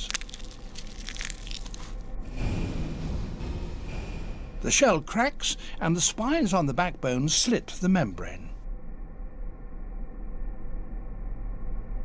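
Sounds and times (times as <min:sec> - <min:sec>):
eggshell crunching and creaking: 0:00.0 - 0:02.1.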